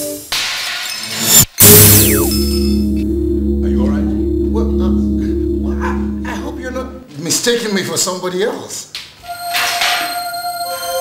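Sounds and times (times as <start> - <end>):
music sting: 1.6 - 7.1.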